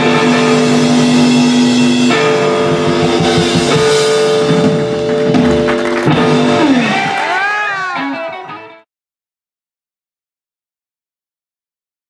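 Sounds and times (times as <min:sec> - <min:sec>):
bass: 0:00.0 - 0:08.8
drums: 0:00.0 - 0:08.8
electric guitar ringing notes: 0:00.0 - 0:08.9.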